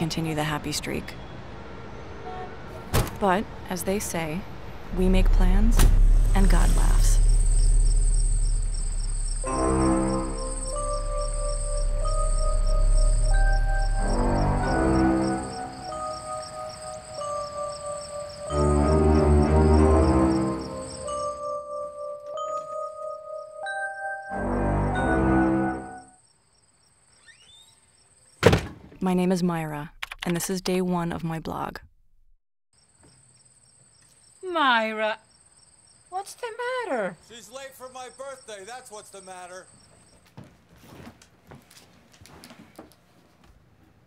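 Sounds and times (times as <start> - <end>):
crickets chirping: 4.7 - 22.1, 26.0 - 28.4, 32.8 - 40.4
continuous high trill: 4.8 - 21.9
steady high whine: 4.9 - 21.2
music with long held notes: 5.1 - 26.1.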